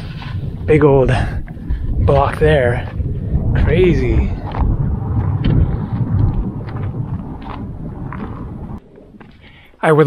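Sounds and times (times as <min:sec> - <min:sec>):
heavy low rumble: 0:00.0 - 0:09.7
wind buffeting microphone: 0:00.0 - 0:09.8
footsteps on loose stones: 0:04.3 - 0:09.7.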